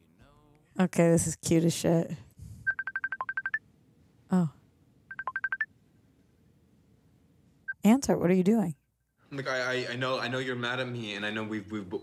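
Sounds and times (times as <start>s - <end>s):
video call ringtone beeps: 2.7s - 3.6s, 5.1s - 5.7s.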